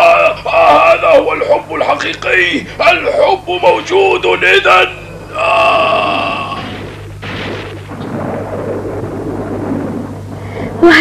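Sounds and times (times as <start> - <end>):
man's anguished cry: 5.3 - 6.6.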